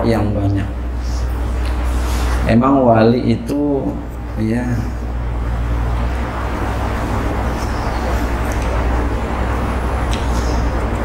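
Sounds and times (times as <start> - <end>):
rumbling background noise: 0.0 - 11.0
steady low hum: 0.0 - 11.0.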